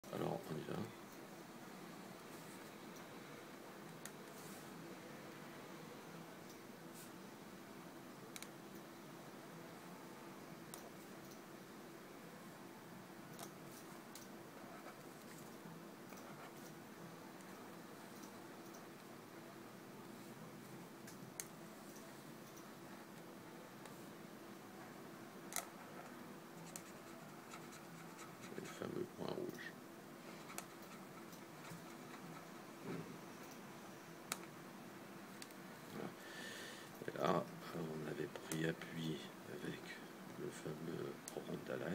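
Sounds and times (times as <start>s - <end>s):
person speaking: 0.0s - 1.1s, 26.6s - 29.8s, 37.0s - 41.9s
faint steady hum: 0.0s - 41.9s.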